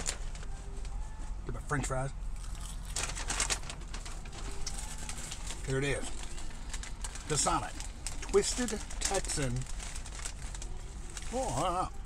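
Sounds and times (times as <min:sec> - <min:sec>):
paper bag rustling: 0:00.0 - 0:00.9, 0:02.8 - 0:12.0.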